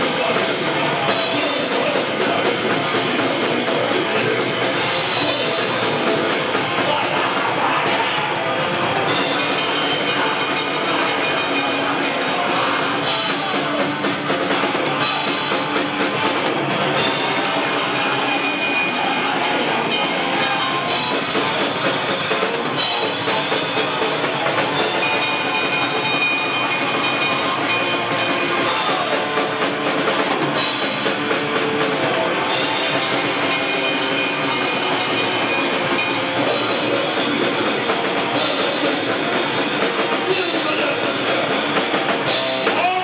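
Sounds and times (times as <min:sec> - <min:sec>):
distorted electric guitars: 0:00.0 - 0:43.0
drums: 0:00.0 - 0:43.0
live heavy rock band: 0:00.0 - 0:43.0.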